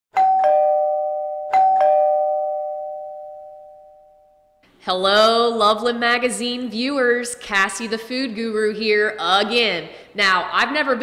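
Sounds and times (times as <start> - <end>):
two-tone doorbell chime: 0.1 - 4.6.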